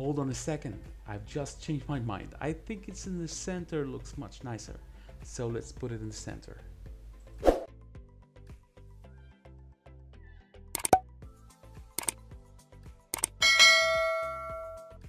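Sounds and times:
sharp clicks: 10.8s - 11.0s, 13.2s - 13.4s
notification bell ding: 13.4s - 15.0s.

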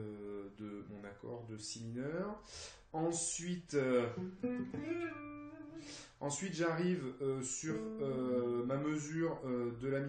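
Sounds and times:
electric guitar notes: 4.0s - 6.0s, 7.6s - 8.6s.

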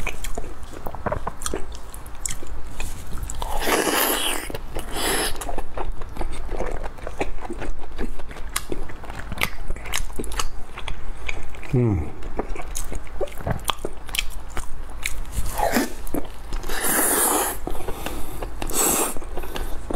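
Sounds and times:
wet chewing: 0.0s - 19.9s.

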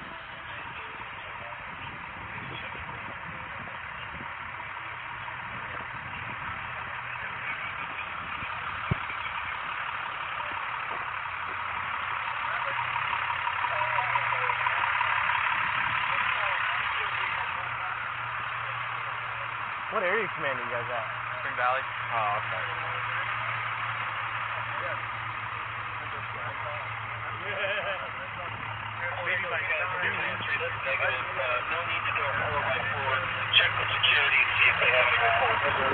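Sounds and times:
vehicle engine idling: 0.0s - 35.9s.

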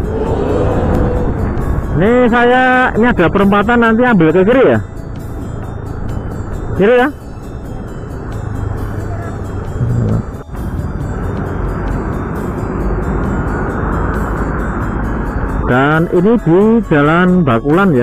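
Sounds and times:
wind and road rush: 0.0s - 18.0s.

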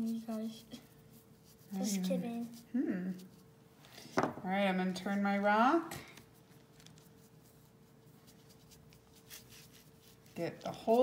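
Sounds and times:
faint steady hum: 0.0s - 11.0s
paintbrush dabbing on stone: 7.1s - 11.0s.

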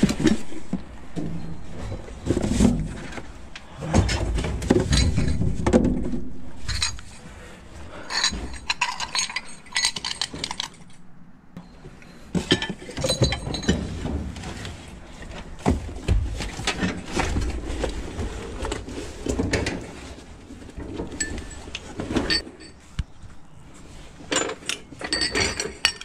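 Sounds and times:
cardboard boxes shuffling: 0.0s - 6.0s.

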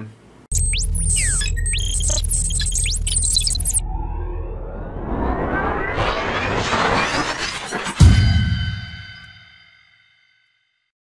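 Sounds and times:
glittery high chirps: 0.5s - 3.8s
deep electronic rumble: 0.5s - 8.0s
rising and falling swooshes: 1.4s - 8.9s.

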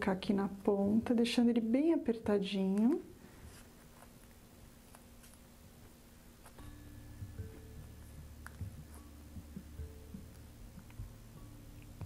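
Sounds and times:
faint low hum with soft tones: 0.0s - 12.0s.

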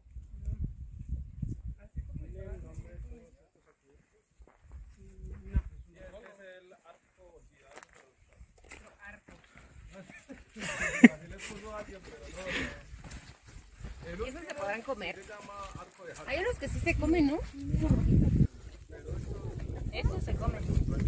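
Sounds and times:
low chatter of hikers: 0.0s - 21.0s.

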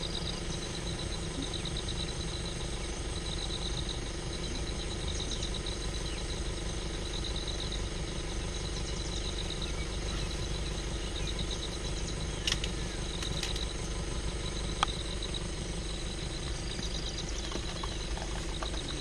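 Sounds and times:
engine idling: 0.0s - 19.0s
high pulsed chirping trills: 0.0s - 19.0s.

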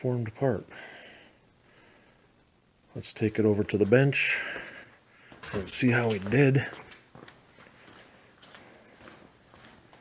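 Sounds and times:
soft footsteps on concrete: 3.5s - 10.0s.

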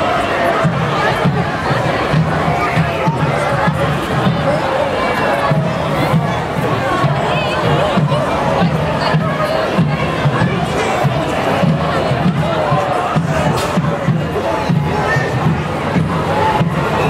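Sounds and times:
crowd shouting and calling: 0.0s - 17.0s.

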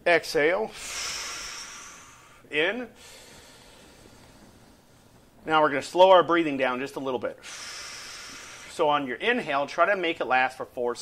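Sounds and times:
person inhaling slowly: 0.7s - 5.1s, 7.4s - 8.9s.

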